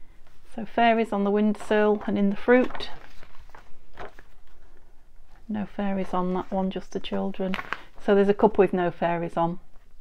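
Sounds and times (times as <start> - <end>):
paper sheets rustling: 1.2 - 8.4
paper crinkling: 1.4 - 8.2.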